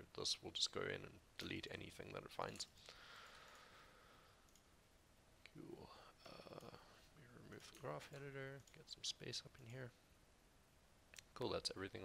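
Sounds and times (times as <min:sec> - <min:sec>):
computer mouse clicks: 0:04.4 - 0:04.7.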